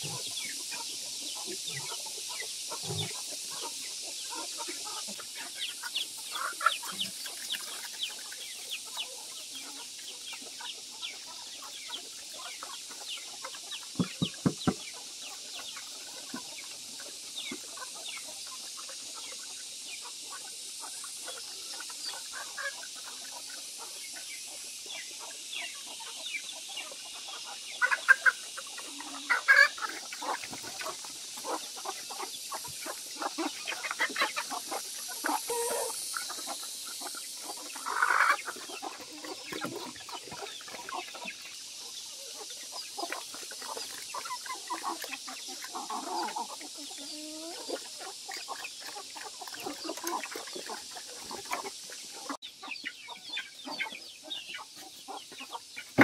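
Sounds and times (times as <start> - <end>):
chickens clucking: 0.0 - 56.0
pigs feeding at trough clicks: 6.3 - 10.5, 37.5 - 41.6, 42.6 - 52.0.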